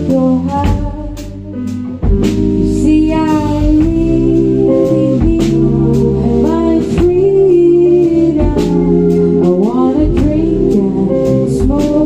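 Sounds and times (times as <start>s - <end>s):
woman singing lead vocal: 0.0s - 1.8s, 2.6s - 12.0s
drum kit: 0.0s - 12.0s
electric bass: 0.0s - 12.0s
electric guitar: 0.0s - 12.0s.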